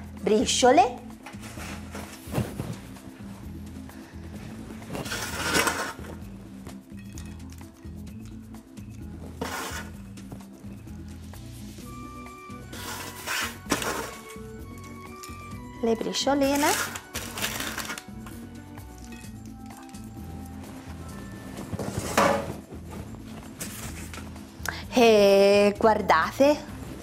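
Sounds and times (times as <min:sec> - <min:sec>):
soft background music: 0:00.0 - 0:27.0.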